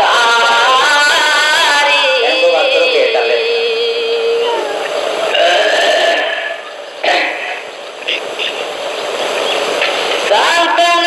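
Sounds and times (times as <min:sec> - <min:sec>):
man singing long note: 0:00.0 - 0:06.6.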